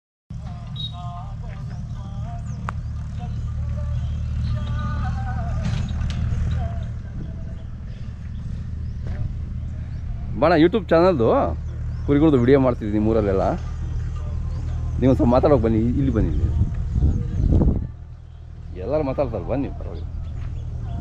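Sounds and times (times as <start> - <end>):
wind rumble on microphone: 0.4 - 12.1, 13.9 - 21.0.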